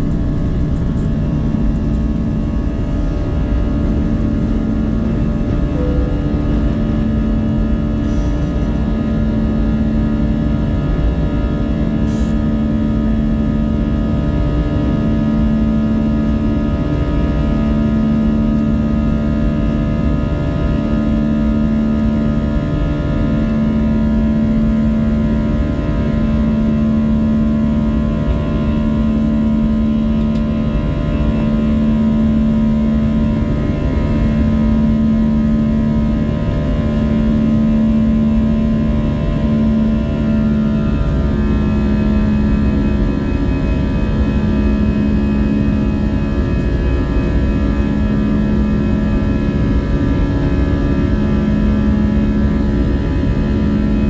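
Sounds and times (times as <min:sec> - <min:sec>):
jet engines heard from cabin: 0:00.0 - 0:54.0.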